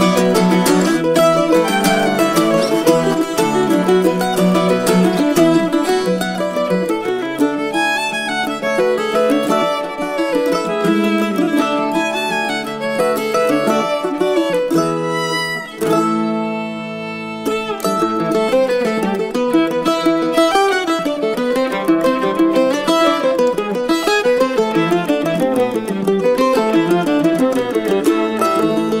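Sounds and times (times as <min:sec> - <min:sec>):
fiddle tune: 0:00.0 - 0:29.0
plucked-string accompaniment: 0:00.0 - 0:29.0.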